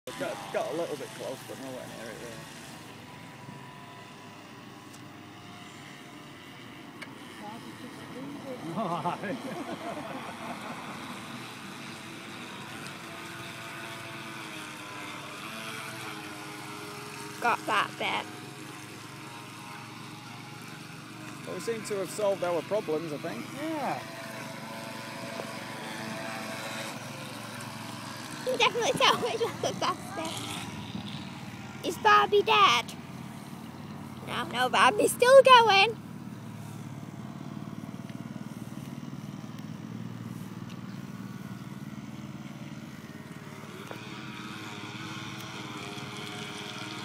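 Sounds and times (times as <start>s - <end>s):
model boat motors whining: 0.1s - 47.0s
outdoor noise hiss: 0.2s - 47.0s.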